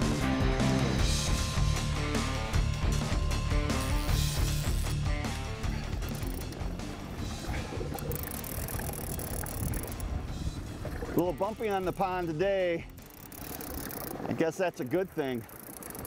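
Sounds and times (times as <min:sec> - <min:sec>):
background music: 0:00.0 - 0:14.0
open boat on water: 0:00.0 - 0:16.0
wind: 0:00.0 - 0:16.0.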